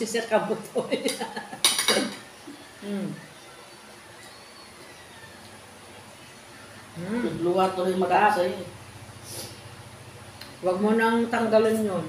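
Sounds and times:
people talking: 0.0 - 1.3, 2.8 - 3.3, 7.0 - 8.8, 10.6 - 12.0
laughter: 0.7 - 1.7
knife clinking on plate: 1.6 - 2.3
person humming: 2.8 - 3.3, 7.0 - 7.4.

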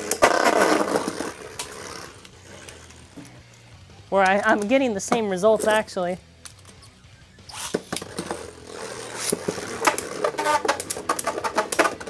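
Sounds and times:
spinning tops clashing in plastic stadium: 7.5 - 12.0.

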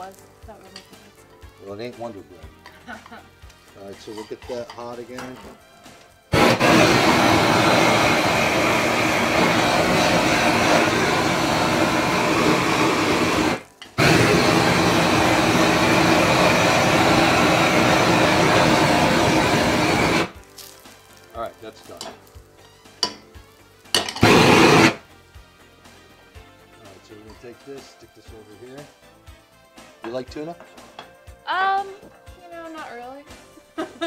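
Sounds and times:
gas torch flame rushing: 6.3 - 20.4, 23.9 - 25.1.

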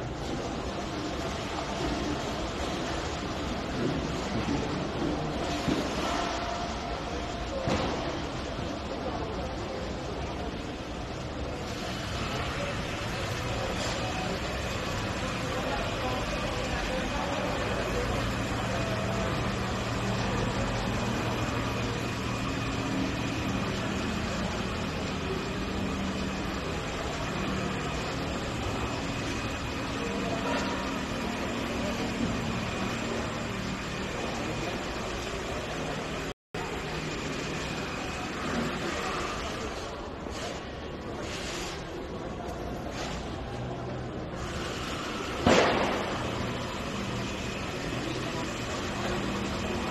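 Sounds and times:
exhibition hall background noise: 0.0 - 49.9.

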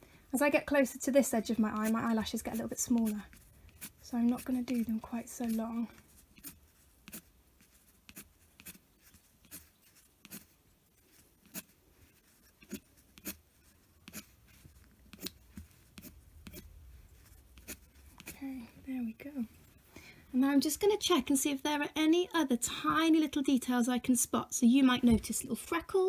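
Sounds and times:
pencil scratching on paper: 0.7 - 18.7.

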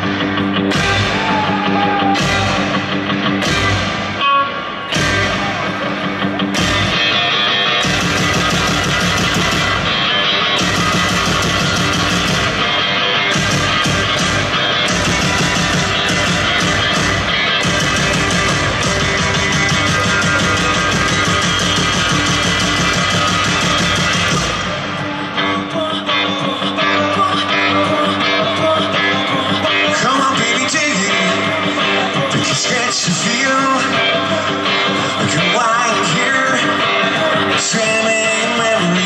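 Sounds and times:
bass guitar: 0.0 - 39.0
distorted electric guitar: 0.0 - 39.0
drums: 0.0 - 39.0.

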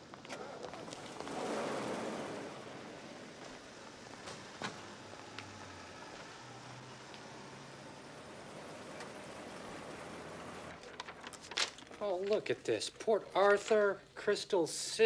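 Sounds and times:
faint outdoor background noise: 0.0 - 15.0.

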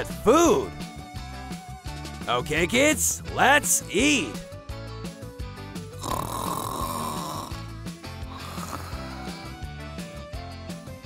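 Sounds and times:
light background music: 0.0 - 11.0
cartoon snoring: 5.9 - 9.6.

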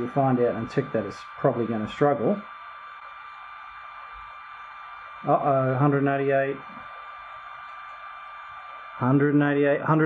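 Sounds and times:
cooling fan whining hiss: 0.0 - 10.0.

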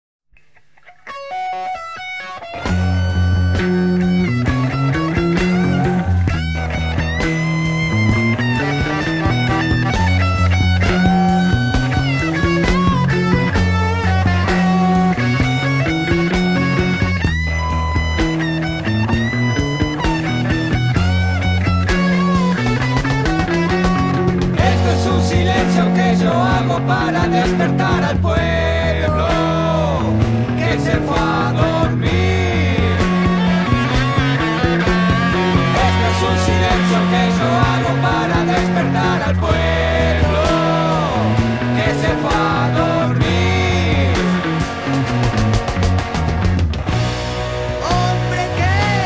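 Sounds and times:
bass guitar riff: 0.4 - 49.0
electric guitars: 0.4 - 49.0
rock drums: 0.4 - 49.0.

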